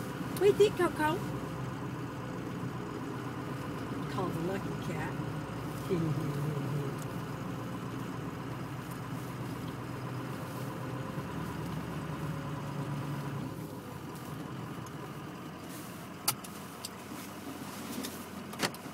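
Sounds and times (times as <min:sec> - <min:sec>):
vehicle engine idling: 0:00.0 - 0:18.9.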